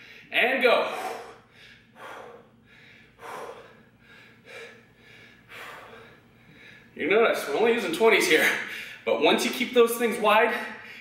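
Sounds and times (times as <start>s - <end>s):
man breathing hard: 0.0s - 7.0s, 10.5s - 11.0s.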